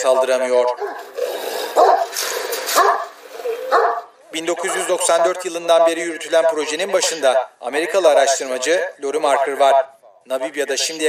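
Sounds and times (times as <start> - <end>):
dog barking: 0.8 - 1.1, 1.7 - 5.3.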